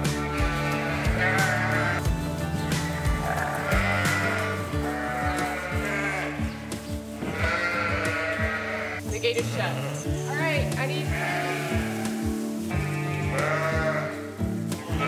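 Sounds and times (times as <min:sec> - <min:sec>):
sheep bleating: 0:00.0 - 0:02.1, 0:02.7 - 0:15.0
background music with steady beat: 0:00.0 - 0:15.0.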